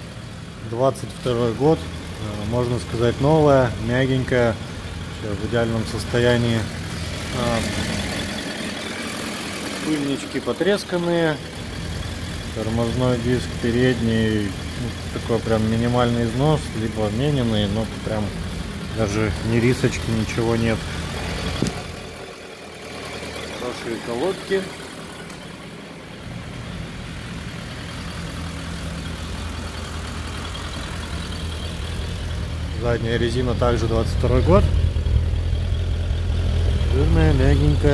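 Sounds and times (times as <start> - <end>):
motorcycle engine idling: 0.0 - 37.9.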